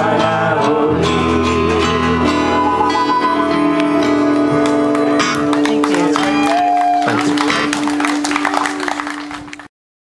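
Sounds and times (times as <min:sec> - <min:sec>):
acoustic guitar strumming: 0:00.0 - 0:08.0
folk band playing: 0:00.0 - 0:09.6.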